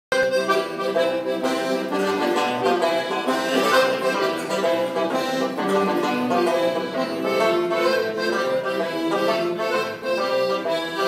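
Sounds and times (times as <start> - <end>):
accordion playing: 0.1 - 11.0.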